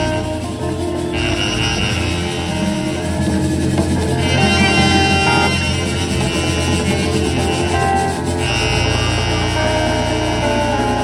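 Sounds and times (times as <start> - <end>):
deep bass line: 0.0 - 11.0
live merengue band playing: 0.0 - 11.0.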